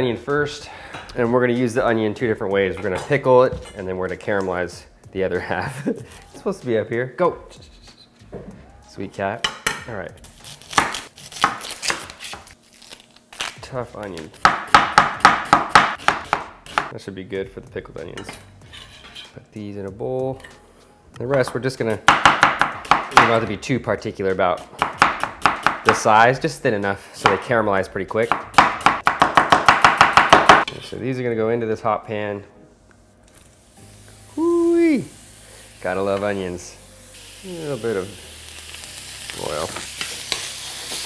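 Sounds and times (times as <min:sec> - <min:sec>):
knife chopping on wooden board: 0:14.4 - 0:16.9, 0:22.1 - 0:23.3, 0:24.7 - 0:26.0, 0:28.3 - 0:30.7.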